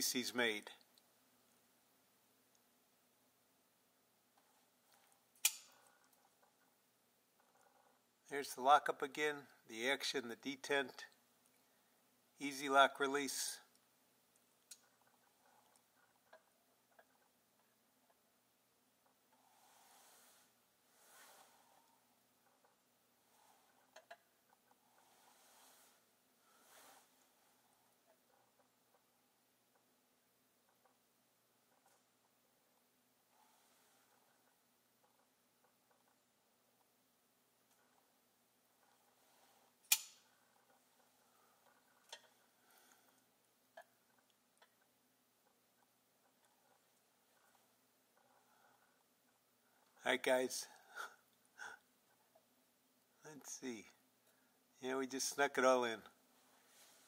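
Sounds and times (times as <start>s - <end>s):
faint handling rustle: 18.9s - 30.0s, 30.6s - 51.5s, 55.2s - 57.0s.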